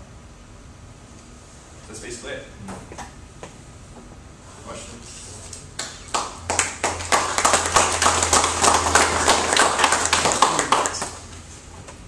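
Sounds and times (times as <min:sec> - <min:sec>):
audience applauding: 0:05.8 - 0:11.2.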